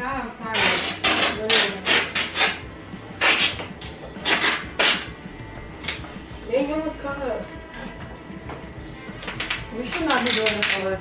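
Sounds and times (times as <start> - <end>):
duct tape ripping off roll: 0.5 - 2.6, 3.2 - 5.1, 9.2 - 11.0.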